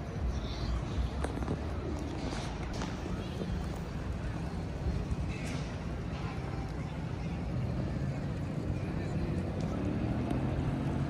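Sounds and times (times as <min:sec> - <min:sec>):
indistinct chatter: 0:00.0 - 0:11.0
traffic rumble: 0:00.0 - 0:11.0.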